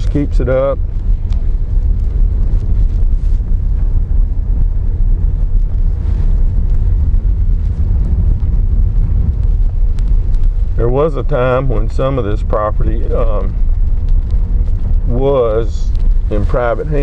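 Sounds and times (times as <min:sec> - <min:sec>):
car driving on dirt road: 0:00.0 - 0:17.0.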